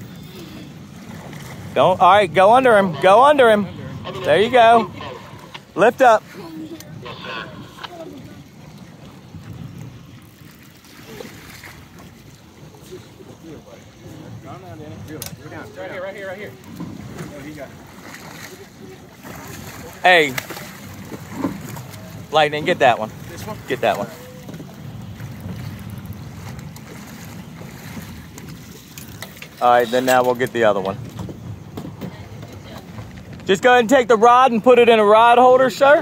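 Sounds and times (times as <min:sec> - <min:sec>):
wind on microphone: 0:00.0 - 0:29.6
boat rumble on water: 0:00.0 - 0:36.0
faint voices: 0:01.7 - 0:09.4.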